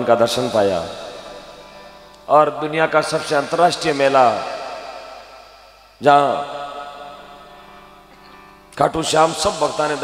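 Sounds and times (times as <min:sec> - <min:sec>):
man chanting: 0:02.3 - 0:05.2, 0:08.8 - 0:10.0.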